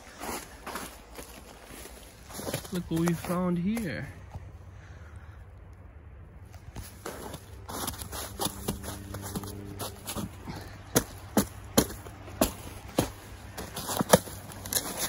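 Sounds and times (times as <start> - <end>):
footsteps crunching in snow: 0.0 - 4.5, 6.5 - 15.0.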